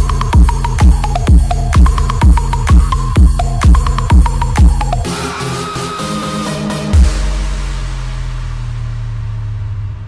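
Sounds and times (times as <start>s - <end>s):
held deep bass tone: 0.0s - 5.1s, 6.9s - 10.0s.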